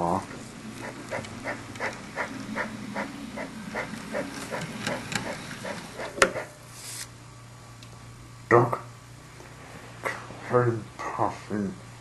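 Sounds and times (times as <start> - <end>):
low motor hum: 0.0 - 12.0
toy train chuffing: 0.6 - 6.6.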